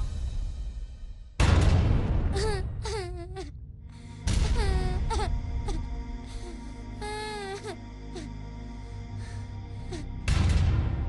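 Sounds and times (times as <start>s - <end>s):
girl wailing sobs: 2.3s - 8.3s, 9.8s - 10.1s.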